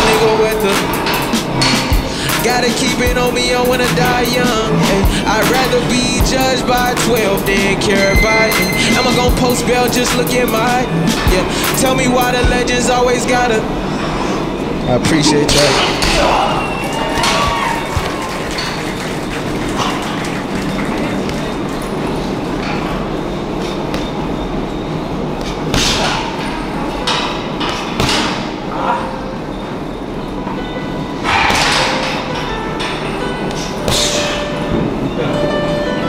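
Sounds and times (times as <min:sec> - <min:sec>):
background music: 0:00.0 - 0:23.4, 0:28.0 - 0:36.0
gloved punches on heavy bag: 0:25.4 - 0:26.3, 0:27.6 - 0:28.5, 0:33.9 - 0:34.4.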